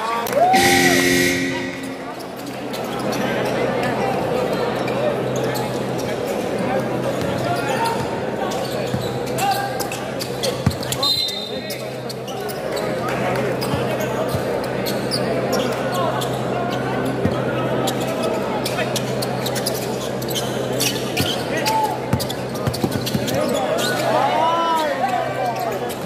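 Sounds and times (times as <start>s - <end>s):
crowd chatter: 0.0s - 26.0s
brief high tone: 0.5s - 2.4s.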